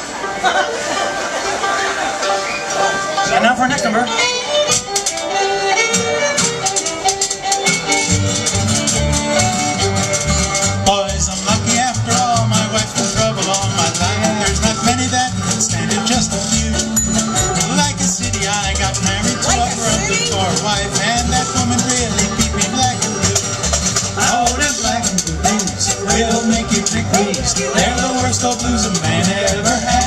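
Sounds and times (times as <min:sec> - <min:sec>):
acoustic guitar: 0:00.0 - 0:30.0
banjo: 0:00.0 - 0:30.0
fiddle: 0:00.0 - 0:30.0
mandolin: 0:00.0 - 0:30.0
upright bass: 0:02.0 - 0:30.0.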